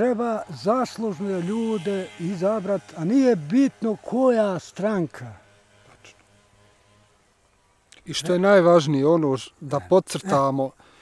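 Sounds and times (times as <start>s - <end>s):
insect buzzing: 0.0s - 11.0s.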